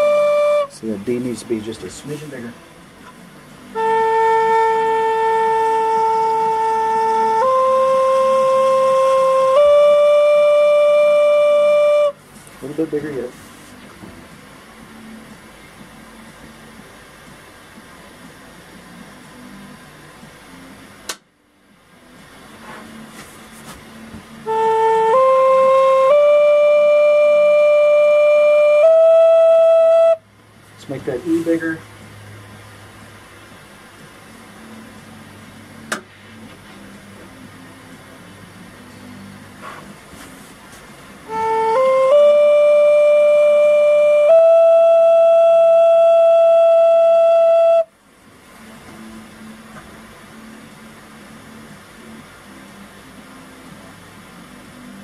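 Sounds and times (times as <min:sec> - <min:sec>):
flute test notes: 0:00.0 - 0:02.6, 0:03.6 - 0:13.4, 0:24.4 - 0:30.3, 0:41.2 - 0:48.0.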